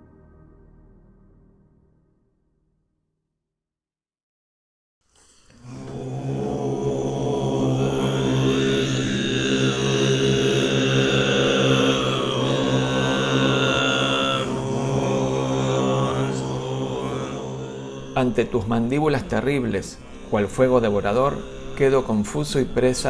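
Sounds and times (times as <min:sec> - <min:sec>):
deep chanting vocal drone: 0:05.4 - 0:23.0.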